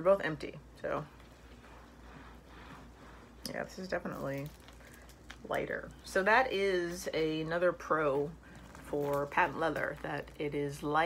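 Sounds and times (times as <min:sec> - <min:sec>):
low steady room hum: 0:00.0 - 0:11.0
rustling of handbags: 0:01.1 - 0:06.1, 0:08.2 - 0:10.4.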